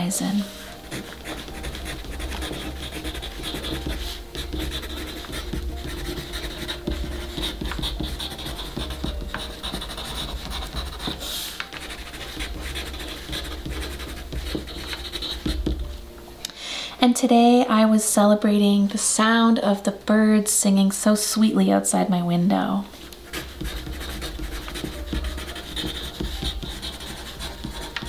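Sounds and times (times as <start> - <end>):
pencil scratching on paper: 0.2 - 15.8, 23.2 - 28.0.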